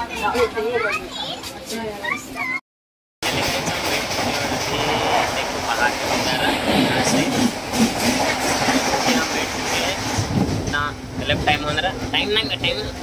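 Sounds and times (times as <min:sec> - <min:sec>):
train wheels rumbling on rails: 0:03.2 - 0:13.0.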